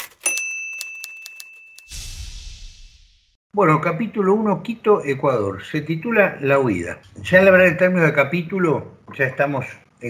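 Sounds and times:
typewriter bell ringing: 0.0s - 1.9s
typewriter keys clacking: 0.0s - 1.9s.

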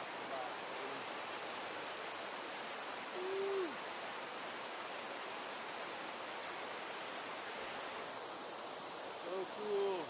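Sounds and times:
river rushing: 0.0s - 10.0s
low hoot: 3.1s - 3.8s.

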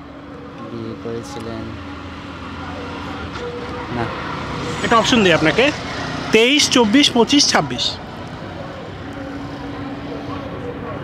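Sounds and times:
city traffic: 0.0s - 11.0s.

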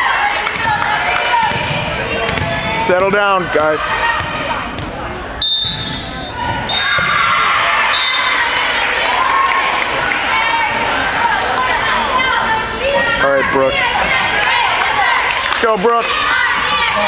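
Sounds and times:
hubbub of spectators' voices: 0.0s - 17.0s
volleyball hits: 0.3s - 8.3s
referee's whistle: 5.4s - 7.2s, 7.9s - 8.5s.

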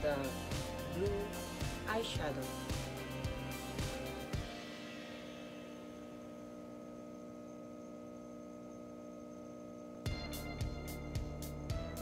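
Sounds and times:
steady hum of held tones: 0.0s - 12.0s.

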